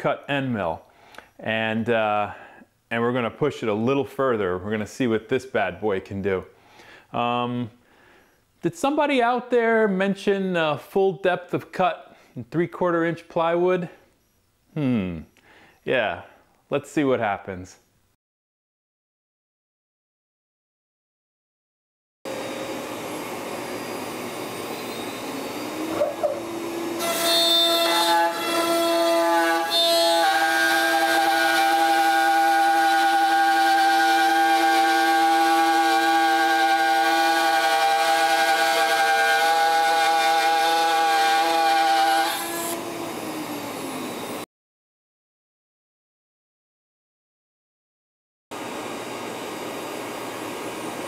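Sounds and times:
router bit cutting plywood: 22.3 - 44.4
router spindle whining: 31.0 - 44.4.

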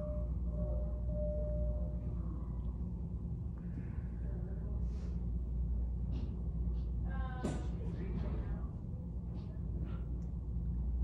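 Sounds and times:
room background rumble: 0.0 - 11.0.

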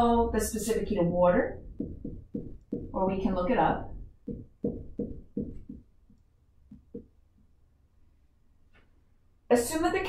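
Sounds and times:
marker writing on whiteboard: 1.5 - 7.2.

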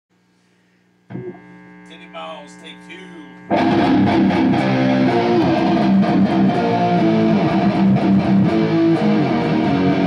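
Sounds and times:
guitar amp mains hum: 0.1 - 10.0.

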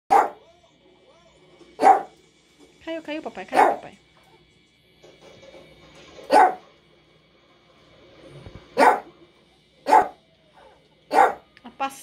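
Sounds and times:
dog barking: 0.1 - 0.4, 1.8 - 2.2, 3.5 - 3.9, 6.3 - 6.7, 8.8 - 9.1, 9.8 - 10.2, 11.1 - 11.5.

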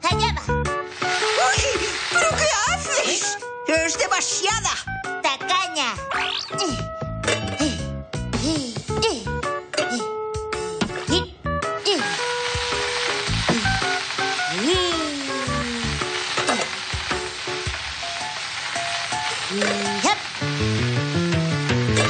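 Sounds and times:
light bouncy background music: 0.0 - 12.6, 20.6 - 22.0
egg sizzling in a frying pan: 0.7 - 3.4, 10.9 - 22.0.

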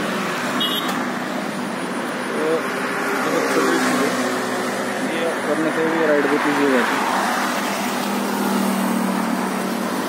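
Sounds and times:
road traffic noise: 0.0 - 10.0
vehicle engine humming close by: 0.0 - 10.0.

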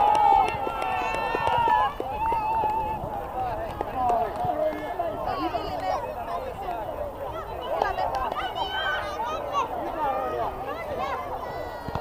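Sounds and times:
children shouting: 0.0 - 3.1, 4.5 - 12.0.

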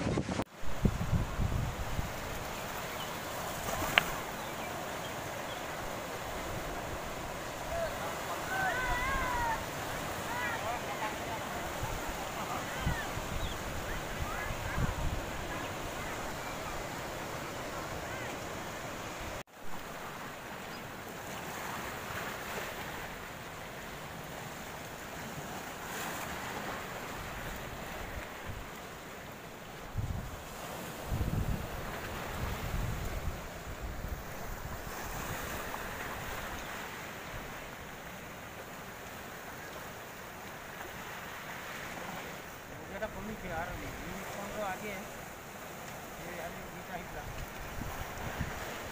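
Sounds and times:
wind gusting on microphone: 0.0 - 4.6, 5.7 - 19.4, 29.9 - 36.7, 47.0 - 48.9
floodwater and waves washing: 0.0 - 48.9.

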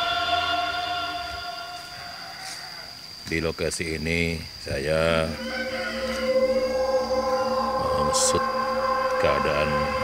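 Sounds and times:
insects singing high-pitched: 0.0 - 10.0
held music: 5.2 - 10.0.

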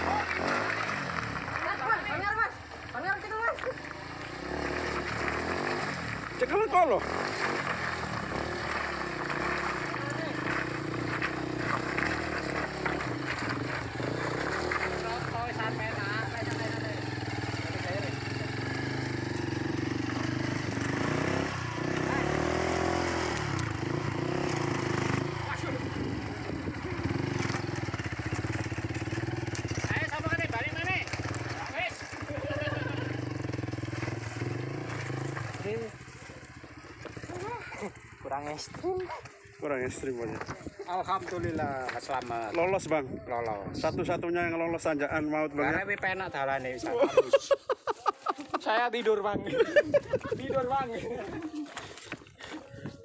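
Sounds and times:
motorcycle engine revving: 0.0 - 47.3
people's voices: 45.2 - 53.0.

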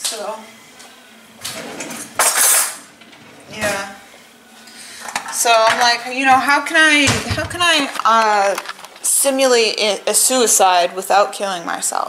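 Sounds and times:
drawer pulled open: 1.4 - 4.2.

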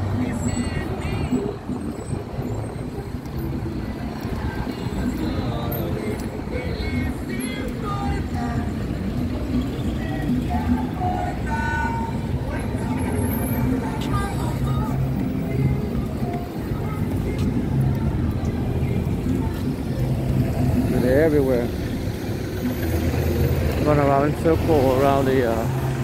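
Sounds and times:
people's voices: 0.0 - 25.8
city bus: 0.0 - 26.0
music: 0.0 - 26.0
van engine pulling away: 16.9 - 26.0.

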